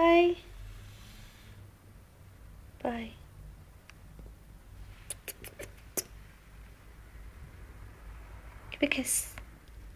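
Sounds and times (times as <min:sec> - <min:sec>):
squeaky lip-kissing sounds: 0:05.0 - 0:06.2.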